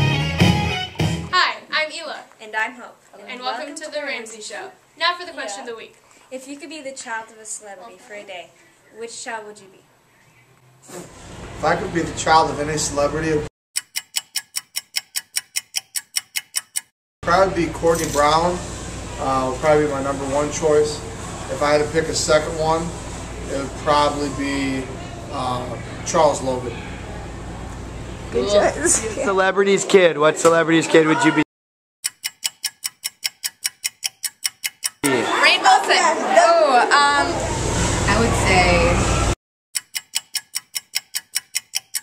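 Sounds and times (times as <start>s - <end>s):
clock ticking: 13.8s - 16.9s, 32.0s - 35.1s, 39.8s - 42.0s.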